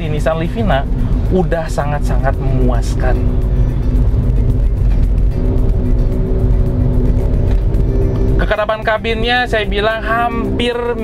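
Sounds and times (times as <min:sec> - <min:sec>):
background music: 0:00.0 - 0:11.0
engine and road rumble: 0:00.0 - 0:11.0.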